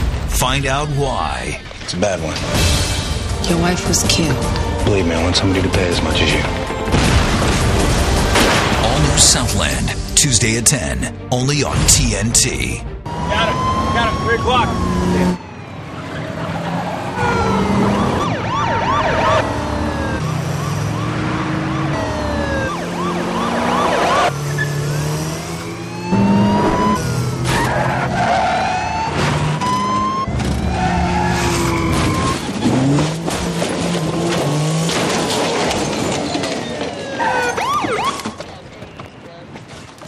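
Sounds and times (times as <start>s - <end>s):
car crash impacts: 6.8s - 9.0s, 30.3s - 38.6s
police sirens wailing: 12.4s - 38.8s
car engines revving hard: 13.1s - 37.4s.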